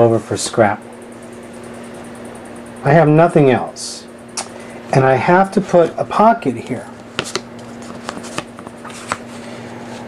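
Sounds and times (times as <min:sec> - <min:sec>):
steady low hum: 0:00.0 - 0:10.0
paper taps and rustles: 0:07.0 - 0:09.3.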